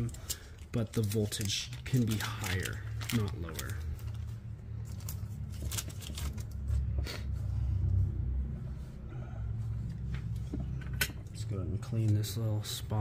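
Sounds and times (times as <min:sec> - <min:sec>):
plastic bag crinkling: 0:00.0 - 0:04.3
steady low rumble: 0:01.6 - 0:13.0.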